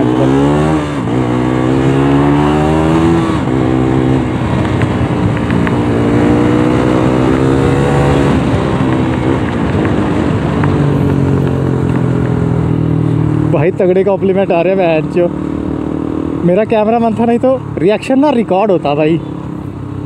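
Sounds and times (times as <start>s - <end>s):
motorcycle engine accelerating: 0.0s - 20.0s
wind rush on microphone: 2.8s - 12.8s.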